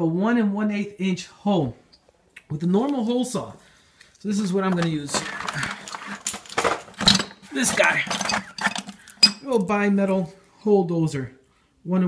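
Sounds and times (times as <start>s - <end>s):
metal hand tools clinking: 4.4s - 9.8s.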